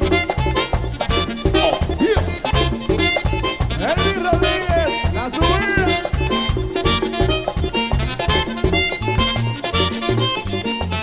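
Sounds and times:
button accordion melody: 0:00.0 - 0:11.0
fast bass and percussion beat: 0:00.0 - 0:11.0.

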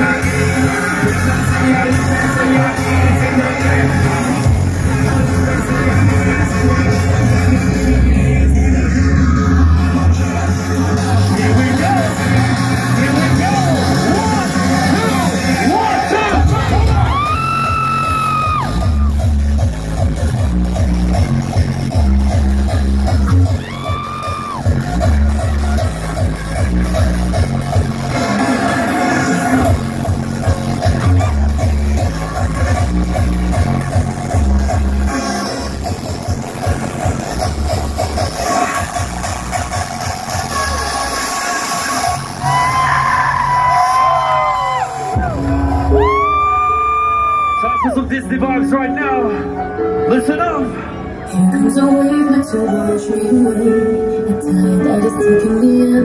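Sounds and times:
pulsing kick and bass: 0:00.0 - 0:42.8, 0:43.8 - 0:46.4
hardstyle dance music: 0:00.0 - 0:48.8.

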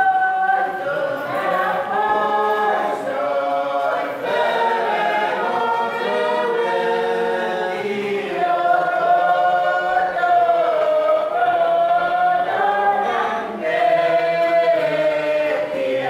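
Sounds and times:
group singing a hymn: 0:00.0 - 0:16.0.

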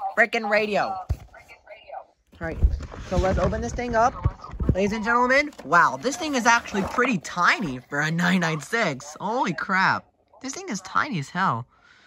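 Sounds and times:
man speaking: 0:05.7 - 0:11.8.

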